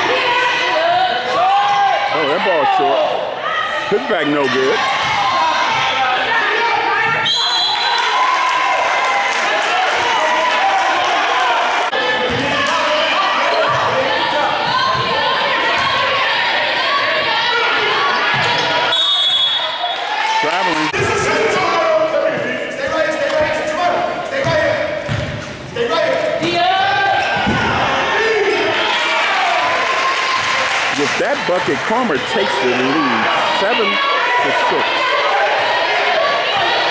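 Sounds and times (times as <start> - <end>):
basketball bouncing on wooden floor: 24.4 - 25.4
people calling out: 31.6 - 36.9.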